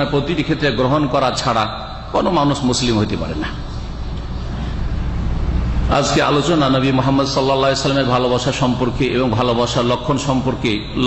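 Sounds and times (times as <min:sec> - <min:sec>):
man speaking: 0:00.0 - 0:03.7, 0:05.9 - 0:11.0
low hum: 0:00.0 - 0:09.8.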